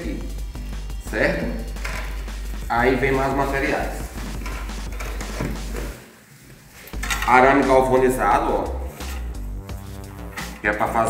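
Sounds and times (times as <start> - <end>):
rustling of materials: 1.7 - 7.7.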